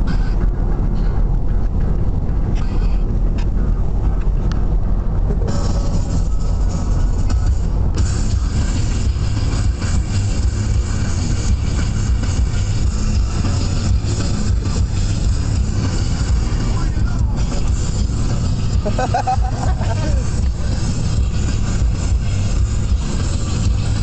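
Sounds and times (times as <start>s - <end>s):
car engine and road rumble: 0.0s - 24.0s.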